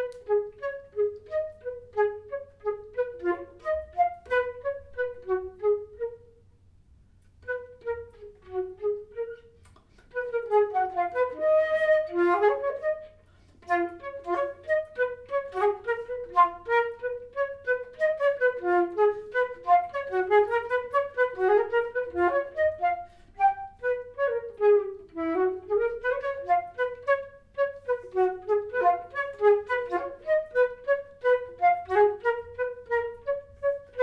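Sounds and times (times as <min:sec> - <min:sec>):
flute playing rapid runs: 0:00.0 - 0:06.3, 0:07.4 - 0:34.0.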